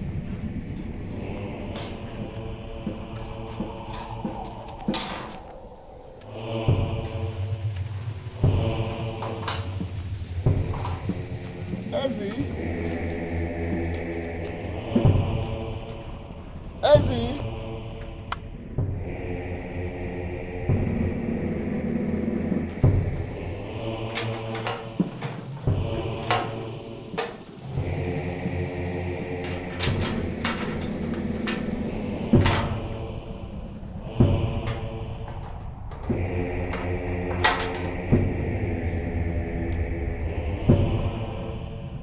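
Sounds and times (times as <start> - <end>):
droning film music chords: 0.0 - 42.0.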